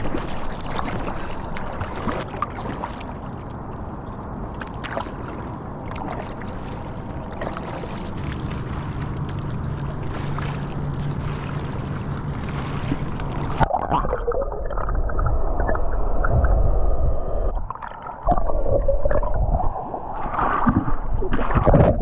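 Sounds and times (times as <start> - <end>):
water splashing around swimmer: 0.0 - 14.0
muffled underwater gurgling: 6.4 - 19.8.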